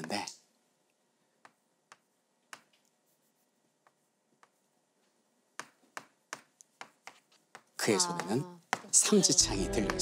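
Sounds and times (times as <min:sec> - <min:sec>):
chalk striking chalkboard: 0:01.4 - 0:04.7, 0:05.5 - 0:09.0.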